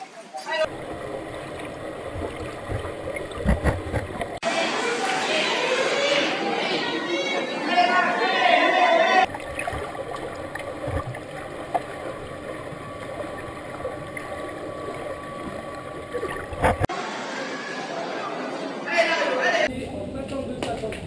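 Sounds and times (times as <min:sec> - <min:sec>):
swimmers splashing: 0:00.6 - 0:21.0
underwater rumble and bubbling: 0:00.7 - 0:04.4, 0:09.3 - 0:16.9
dull underwater knocks: 0:01.3 - 0:04.4, 0:09.3 - 0:12.2
spectators shouting and cheering: 0:04.4 - 0:09.3.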